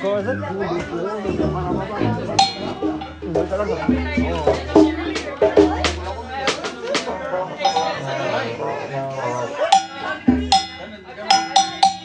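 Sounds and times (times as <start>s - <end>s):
bass drum thump: 1.3s - 7.1s, 10.3s - 10.8s
ringing metallic drum strikes: 1.7s - 8.2s, 9.7s - 12.0s.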